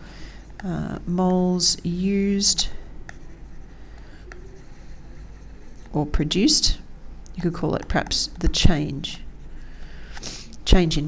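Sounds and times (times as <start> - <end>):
stylus scratching on tablet: 3.1 - 6.5.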